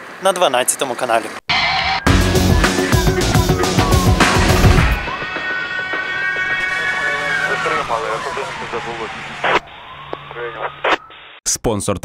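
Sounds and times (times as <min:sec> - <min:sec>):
police siren wailing: 0:01.5 - 0:11.4.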